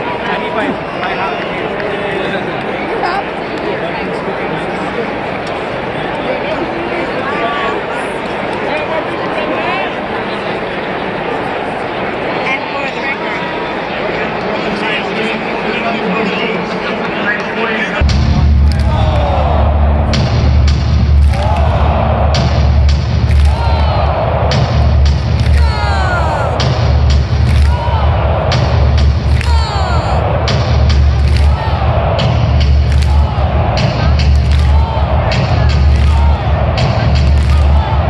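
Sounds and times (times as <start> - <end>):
stadium crowd chattering: 0.0 - 38.0
loud music with heavy bass: 18.0 - 38.0
regular sharp hits: 18.0 - 38.0.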